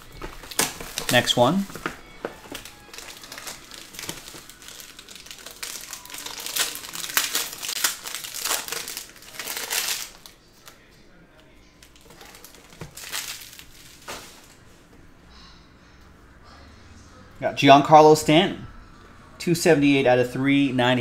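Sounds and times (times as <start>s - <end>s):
plastic wrap crinkling: 0.0s - 14.6s.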